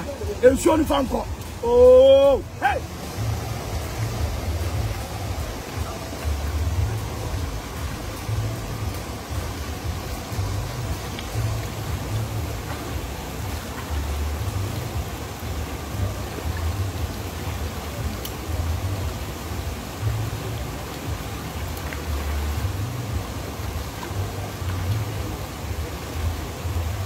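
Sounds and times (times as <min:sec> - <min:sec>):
river water running over rocks: 0:00.0 - 0:27.0.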